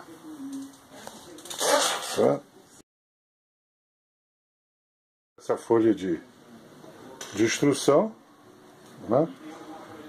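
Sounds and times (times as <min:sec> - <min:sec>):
man talking: 0:09.0 - 0:09.9.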